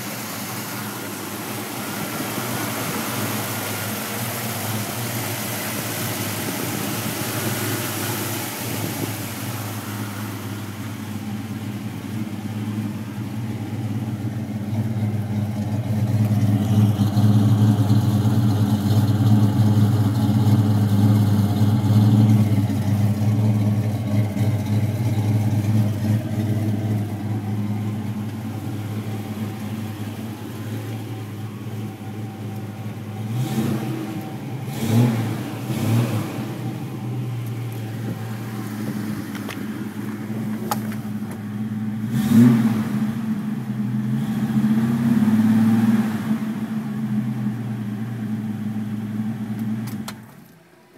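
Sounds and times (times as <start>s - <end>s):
car engine idling: 0.0s - 50.9s.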